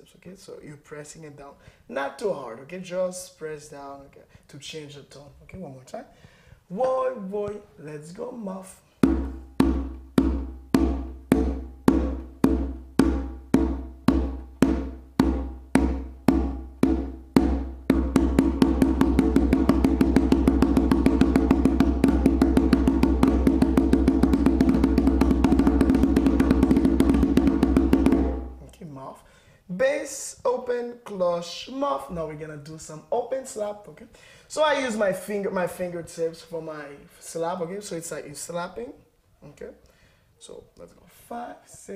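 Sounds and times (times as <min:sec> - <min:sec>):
conga muffled strokes: 0:09.0 - 0:28.8.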